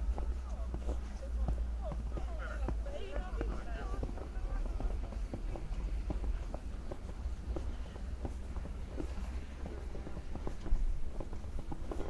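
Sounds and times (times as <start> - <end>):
people talking: 0.0 - 6.4
footsteps crunching in snow: 0.0 - 12.0.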